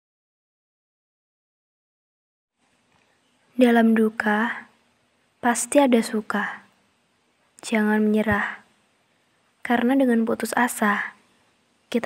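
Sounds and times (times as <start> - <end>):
faint recording hiss: 2.5 - 12.0.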